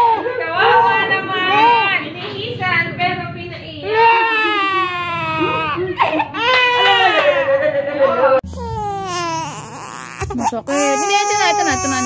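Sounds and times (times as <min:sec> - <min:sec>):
infant crying: 0:03.9 - 0:07.3, 0:08.4 - 0:12.0.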